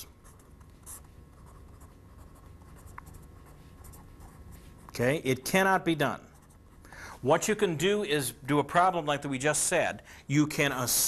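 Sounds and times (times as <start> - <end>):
pen writing on surface: 0.2 - 4.9.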